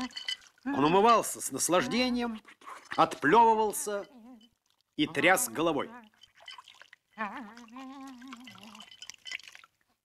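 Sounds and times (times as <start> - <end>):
water splashing and dripping: 0.0 - 2.1, 2.8 - 10.0.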